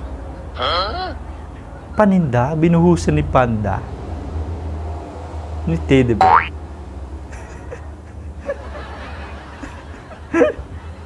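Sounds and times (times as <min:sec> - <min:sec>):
comedic boing sound effect: 0:06.2 - 0:06.5.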